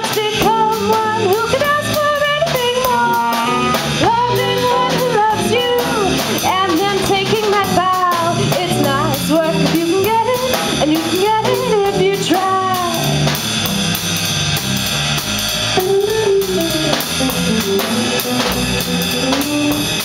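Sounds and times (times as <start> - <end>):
electric guitar: 0.0 - 9.6, 14.8 - 20.0
woman singing: 0.0 - 13.2
drum kit: 0.0 - 20.0.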